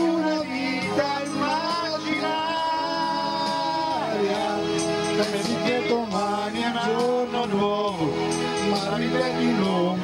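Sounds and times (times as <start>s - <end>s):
backing track music: 0.0s - 10.0s
person singing into microphone: 0.0s - 10.0s.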